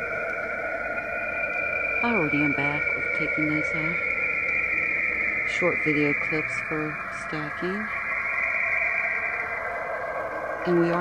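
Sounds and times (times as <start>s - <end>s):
steady static hiss: 0.0s - 11.0s.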